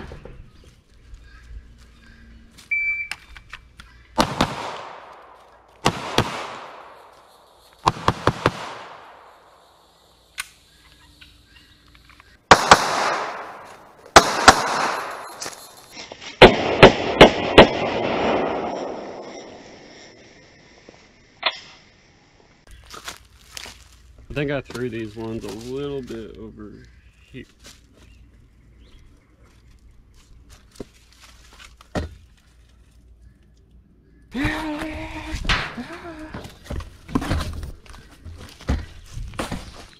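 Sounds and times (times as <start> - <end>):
gunshots with long echo: 4.2 - 7.1, 7.8 - 9.5, 12.5 - 15.2, 16.4 - 19.8.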